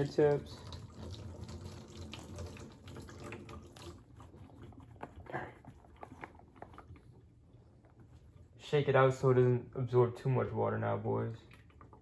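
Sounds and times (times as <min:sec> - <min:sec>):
water trickling and dripping: 0:00.0 - 0:04.9.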